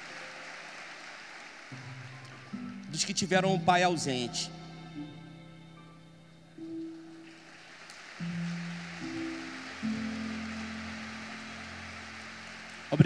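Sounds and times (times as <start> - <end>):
faint rustling hiss: 0.0 - 13.0
soft background music: 0.0 - 13.0.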